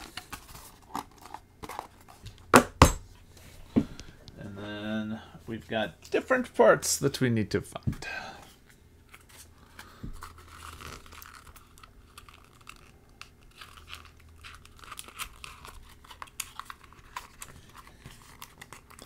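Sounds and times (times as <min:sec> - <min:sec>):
cardboard rustling and crinkling: 0:00.0 - 0:02.4, 0:10.1 - 0:19.0.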